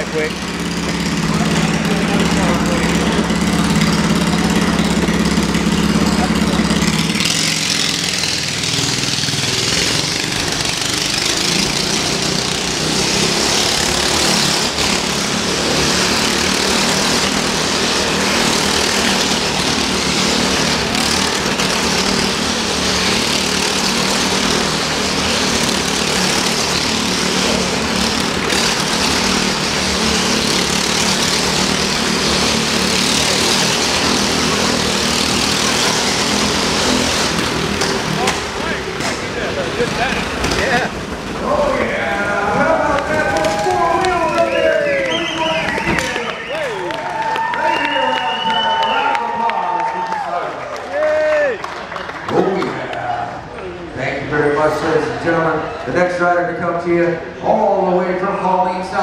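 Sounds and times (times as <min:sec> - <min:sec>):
go-kart engine at high revs: 0:00.0 - 0:59.0.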